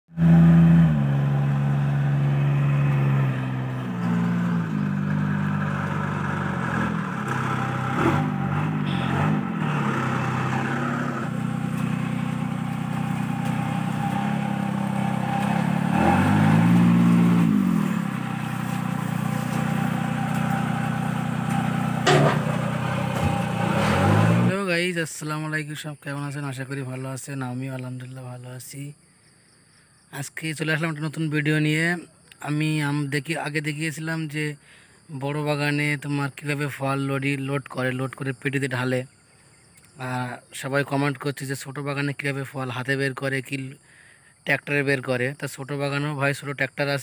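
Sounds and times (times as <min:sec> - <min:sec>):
tractor engine revving: 0:00.1 - 0:24.6
sharp knocks: 0:22.0 - 0:23.4.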